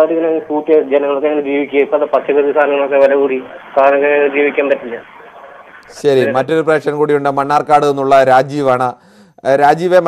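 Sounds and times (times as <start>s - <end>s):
speech over telephone line: 0.0s - 8.6s
faint line hiss: 0.0s - 9.6s.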